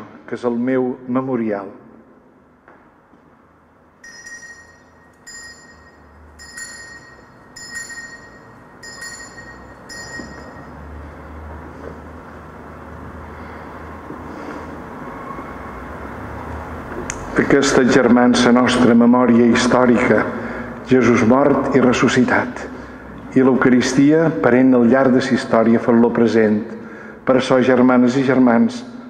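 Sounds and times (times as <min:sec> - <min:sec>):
small bell struck: 0:04.0 - 0:11.0.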